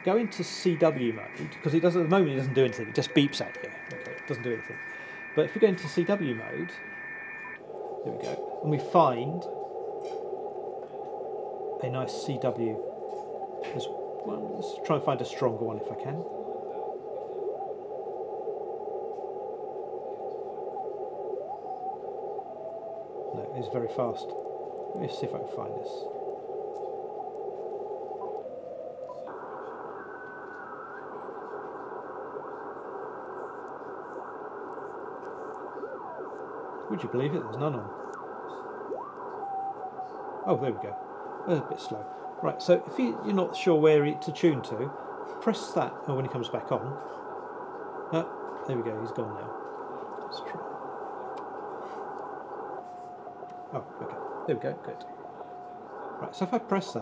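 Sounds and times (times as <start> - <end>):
morse code tone: 0.0 - 7.6
faint gliding tones: 0.0 - 57.0
radio band hiss: 0.0 - 57.0.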